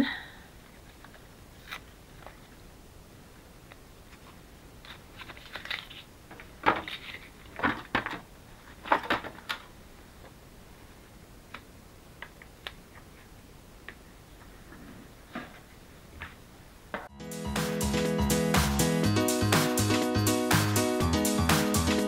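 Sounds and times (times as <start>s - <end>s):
stiff paper crackling and rustling: 4.1s - 9.8s.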